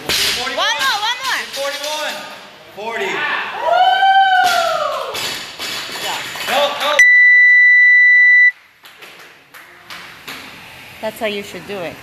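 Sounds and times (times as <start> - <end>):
long high electronic beep: 7.0 - 8.5.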